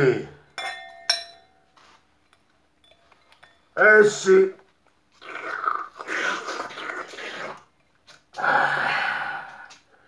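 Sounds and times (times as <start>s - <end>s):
slurping through straws: 5.1s - 7.7s.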